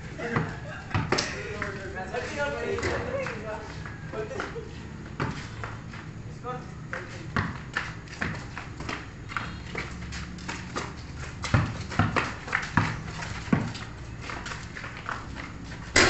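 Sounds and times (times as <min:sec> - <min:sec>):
basketball bouncing on concrete: 0:00.3 - 0:01.8, 0:04.4 - 0:06.0, 0:06.9 - 0:15.3.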